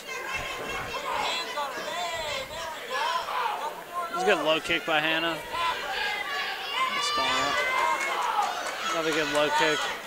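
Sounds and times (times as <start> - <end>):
crowd murmur: 0.0 - 10.0
voices calling out: 0.0 - 10.0.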